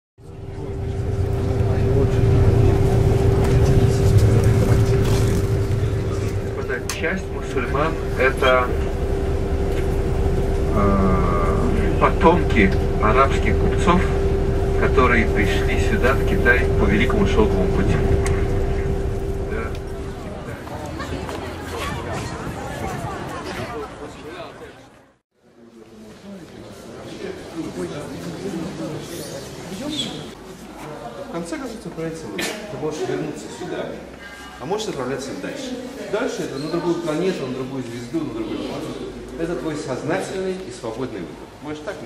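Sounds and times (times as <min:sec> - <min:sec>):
steady hum: 0:00.2 - 0:21.7
constant droning tone: 0:00.2 - 0:22.0
moving bus rumble: 0:00.2 - 0:24.1.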